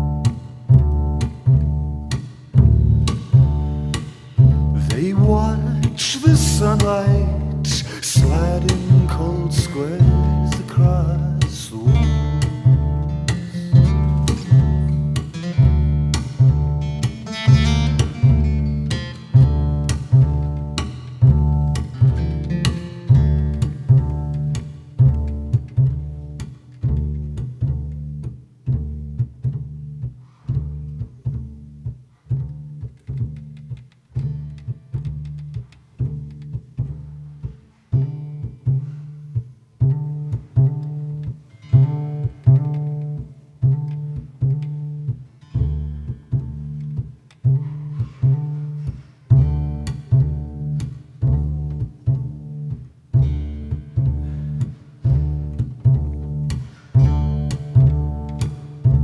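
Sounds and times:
double bass plucked notes: 0.0s - 59.0s
faint higher plucked notes: 0.0s - 59.0s.

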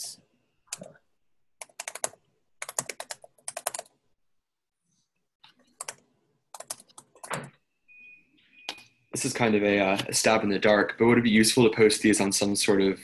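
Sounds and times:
typing on keyboard: 1.6s - 4.0s, 5.7s - 7.6s.

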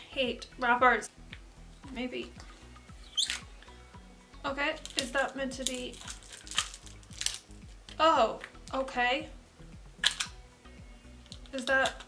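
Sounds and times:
quiet background music with beat: 0.0s - 12.0s
plastic wrapper crinkling: 4.8s - 8.0s.

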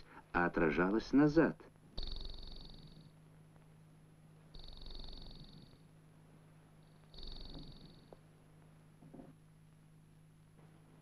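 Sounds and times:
faint steady hum: 0.0s - 11.0s
high-pitched pulsing electronic buzzes: 2.0s - 3.2s, 4.5s - 6.0s, 6.8s - 8.2s.

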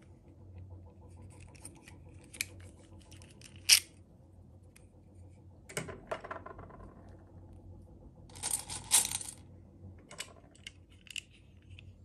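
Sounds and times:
beads clattering in metal tin: 8.3s - 9.4s.

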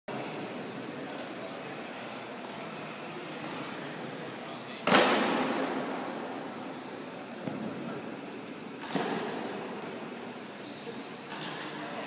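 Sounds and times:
rc car motors whining: 0.1s - 7.1s.

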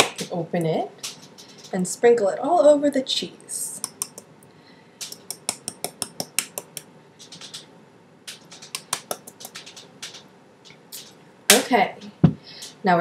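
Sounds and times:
shaker jar rattling and tapping: 3.8s - 4.3s, 5.0s - 7.7s, 8.3s - 11.2s.

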